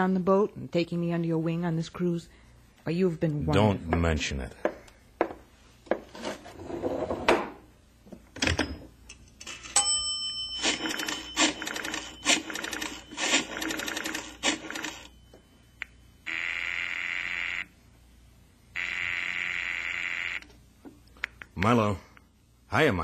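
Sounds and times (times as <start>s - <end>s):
telephone ringing on the line: 9.5s - 15.6s, 16.2s - 17.7s, 18.8s - 20.4s.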